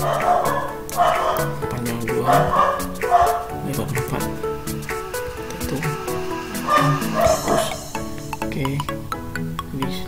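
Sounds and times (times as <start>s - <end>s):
dog barking: 0.0s - 3.6s, 6.6s - 7.9s
background music: 0.0s - 10.0s.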